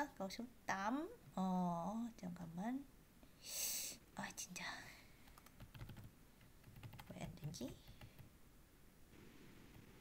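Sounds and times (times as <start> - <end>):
keyboard typing: 5.2 - 8.3.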